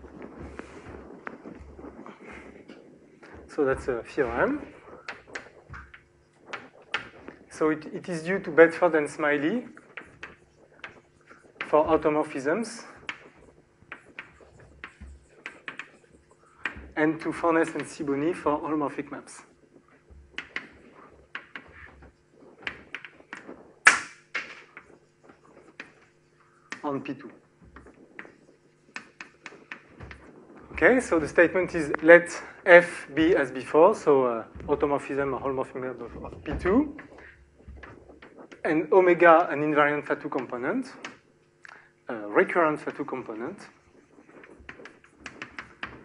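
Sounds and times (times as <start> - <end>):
chalk tapping on a blackboard: 9.8 - 17.0, 20.0 - 26.8, 27.6 - 32.0, 43.3 - 46.0.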